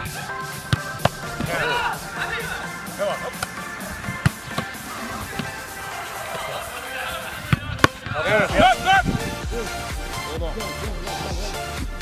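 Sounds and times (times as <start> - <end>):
background music: 0.0 - 12.0
football being kicked: 0.7 - 1.7, 3.4 - 5.6.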